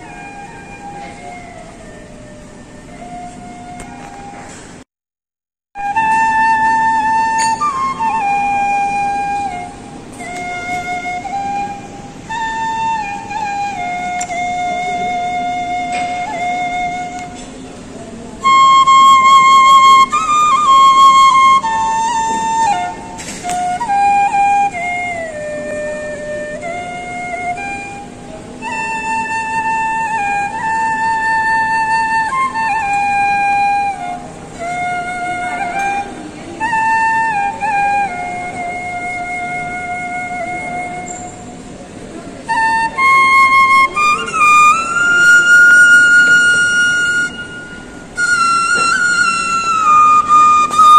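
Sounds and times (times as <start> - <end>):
bamboo flute melody: 0.0 - 4.8, 5.8 - 50.9.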